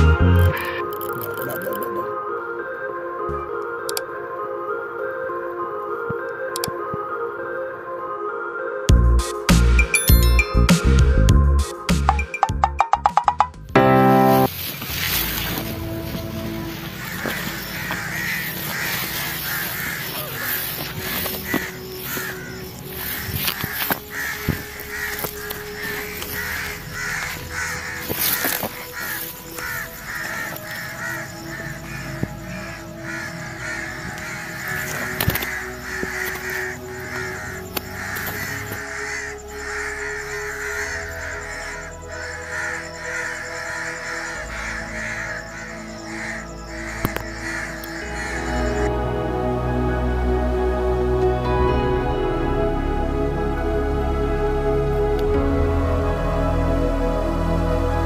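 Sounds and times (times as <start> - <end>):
background music: 0.0 - 58.0
bird calls: 14.4 - 49.0.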